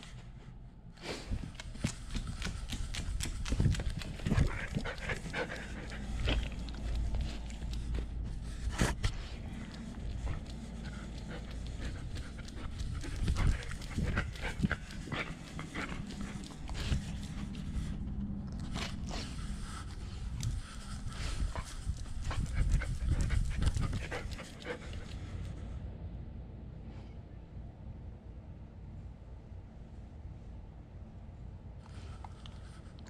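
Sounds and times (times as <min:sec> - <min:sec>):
dog panting: 0:01.0 - 0:25.7.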